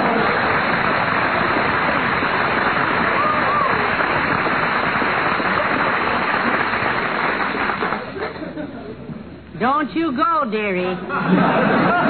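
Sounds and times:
audience applauding: 0:00.0 - 0:08.4.

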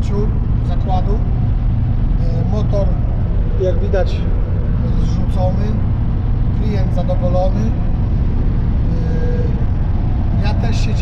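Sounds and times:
van engine and road rumble: 0:00.0 - 0:11.0.

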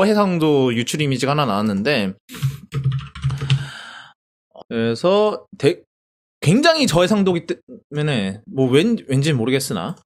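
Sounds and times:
computer keyboard typing: 0:02.3 - 0:03.7.

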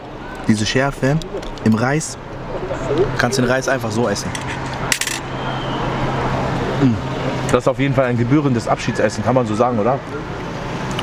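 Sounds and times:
street background hum: 0:00.0 - 0:11.0
cutlery clinking on metal plate: 0:04.3 - 0:05.2
voice murmuring: 0:06.7 - 0:07.1.

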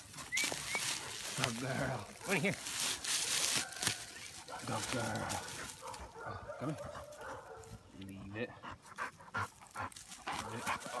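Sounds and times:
dog panting: 0:04.4 - 0:11.0.

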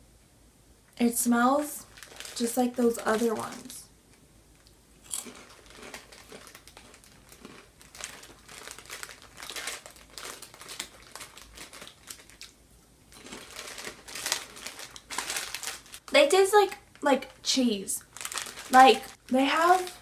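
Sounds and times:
plastic snack bag crinkling: 0:01.6 - 0:03.9, 0:05.0 - 0:20.0.

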